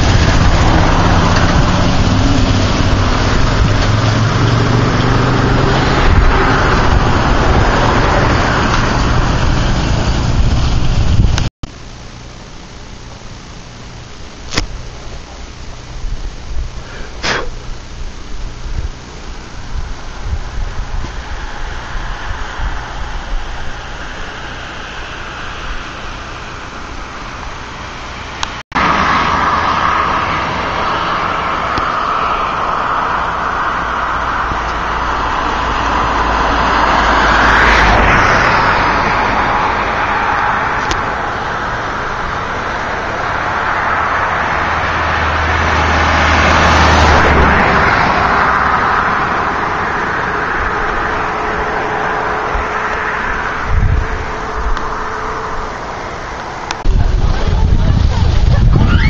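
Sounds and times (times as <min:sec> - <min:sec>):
car road and wind noise: 0:00.0 - 0:59.0.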